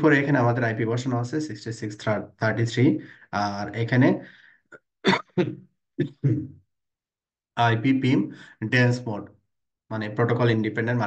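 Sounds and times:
man speaking: 0:00.0 - 0:04.2, 0:05.1 - 0:06.5, 0:07.6 - 0:09.3, 0:09.9 - 0:11.0
man clearing throat: 0:05.1 - 0:06.5.

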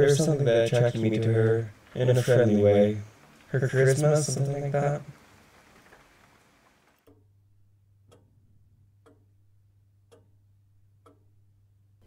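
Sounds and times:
low steady hum: 0:00.0 - 0:12.0
faint ticking: 0:08.0 - 0:08.4, 0:09.0 - 0:09.4, 0:10.0 - 0:11.4.

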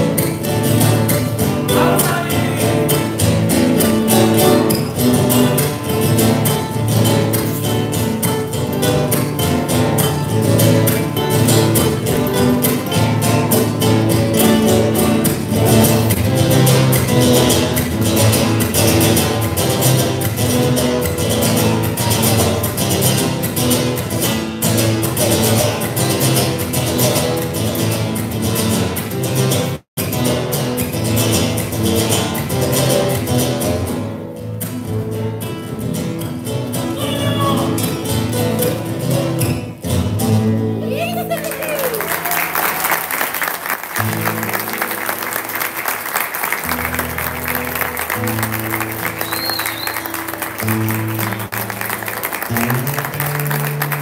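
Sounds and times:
acoustic guitar strummed fast: 0:00.0 - 0:54.0.

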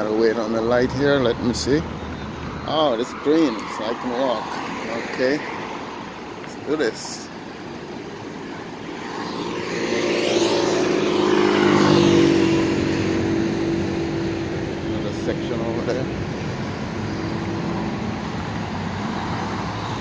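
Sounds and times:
hum of passing cars: 0:00.0 - 0:20.0
motor vehicle engine passing: 0:08.4 - 0:20.0.

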